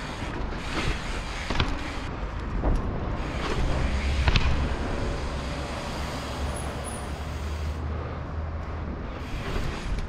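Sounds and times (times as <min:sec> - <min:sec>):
bike tyres rumbling on paving: 0:00.0 - 0:07.7, 0:08.9 - 0:10.0.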